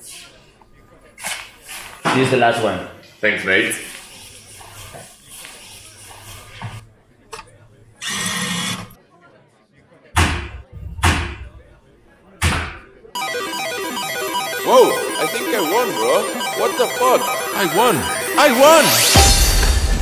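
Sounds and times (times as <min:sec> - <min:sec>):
heavy thuds: 0:10.2 - 0:11.8
busy electronic music: 0:13.2 - 0:19.9.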